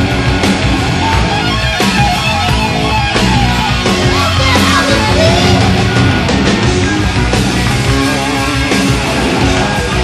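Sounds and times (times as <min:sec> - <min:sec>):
drums: 0:00.0 - 0:10.0
lead electric guitar: 0:00.0 - 0:10.0.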